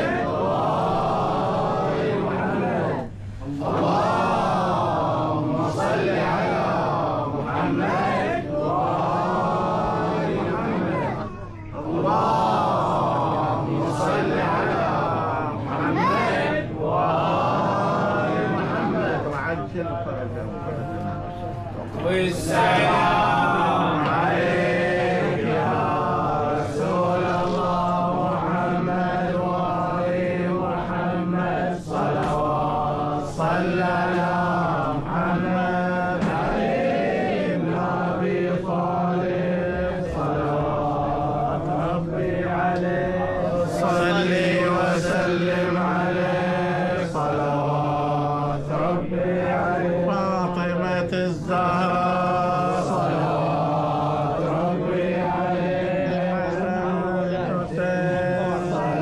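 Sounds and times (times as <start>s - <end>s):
melodic vocal chanting: 0.0s - 59.0s.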